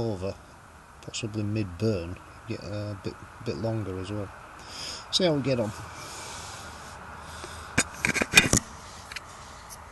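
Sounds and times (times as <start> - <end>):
faint steady hiss: 0.0 - 9.9
phone handling clicks and knocks: 7.8 - 9.2.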